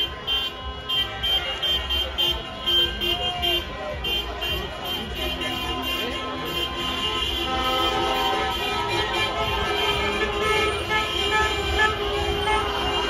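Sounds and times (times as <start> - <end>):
car horns honking: 0.0 - 13.0
crowd shouting: 0.0 - 13.0
low rumble of slow traffic: 0.0 - 13.0.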